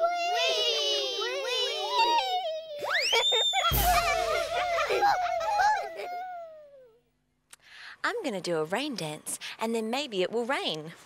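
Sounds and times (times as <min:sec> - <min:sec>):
cartoon crash: 0:03.5 - 0:05.3.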